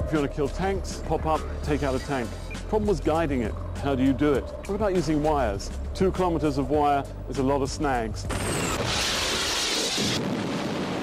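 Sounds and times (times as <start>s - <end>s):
rocket motor roar: 8.3s - 11.0s.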